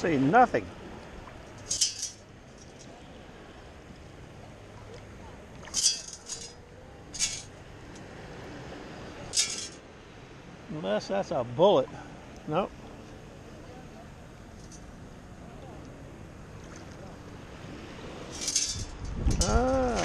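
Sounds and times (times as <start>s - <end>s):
water sloshing: 0.7s - 9.9s, 11.9s - 20.0s
metal scoop clinking: 1.6s - 2.7s, 5.7s - 6.6s, 7.2s - 7.5s, 9.3s - 9.8s, 18.3s - 20.0s.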